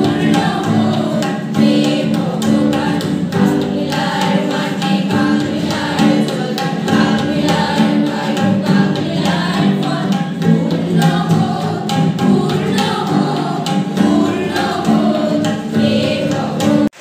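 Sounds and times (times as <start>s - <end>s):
girls and women singing together: 0.0s - 17.0s
tabla strokes: 0.0s - 17.0s.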